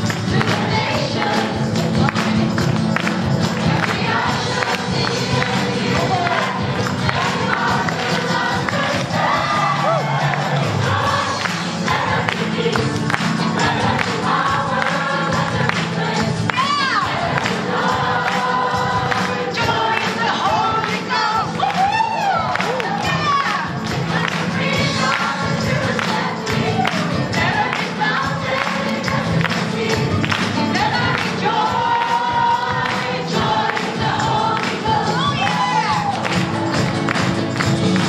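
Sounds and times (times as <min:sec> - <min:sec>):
hand claps: 0:00.0 - 0:09.3, 0:10.2 - 0:38.0
congregation singing gospel hymn: 0:00.0 - 0:38.0.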